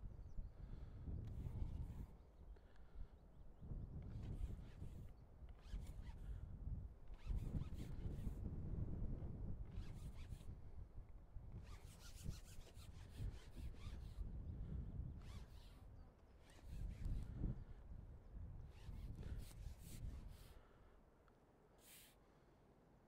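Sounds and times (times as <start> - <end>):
wind buffeting microphone: 0.0 - 2.2, 3.5 - 15.7, 16.4 - 20.4.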